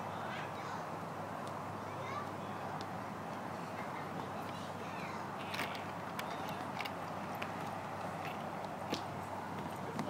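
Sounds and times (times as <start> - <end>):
outdoor background noise: 0.0 - 10.0
child's footsteps on mulch and wood: 1.5 - 10.0.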